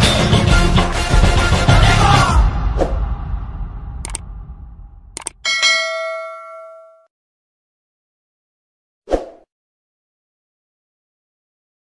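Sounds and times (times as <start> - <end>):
button clicks: 5.2 - 5.4
notification bell ding: 5.4 - 7.1.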